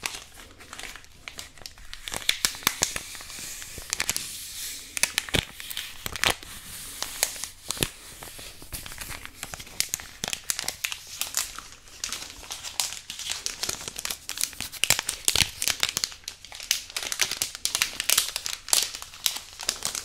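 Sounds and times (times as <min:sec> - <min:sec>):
packet crinkling: 0:00.0 - 0:20.0.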